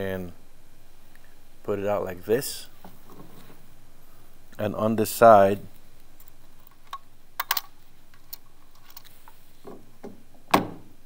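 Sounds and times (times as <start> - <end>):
small metallic clicks: 6.1 - 9.4.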